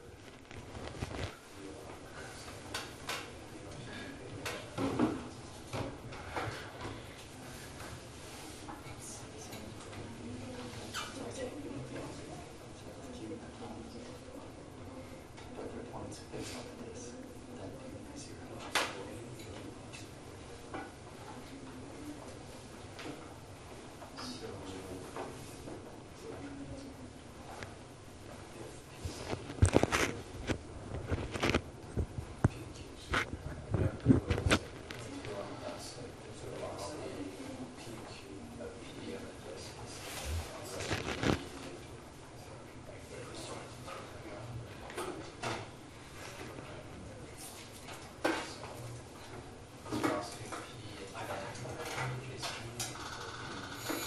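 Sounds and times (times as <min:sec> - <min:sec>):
clothing rustling: 0:00.1 - 0:01.6, 0:29.0 - 0:32.4, 0:40.0 - 0:41.8.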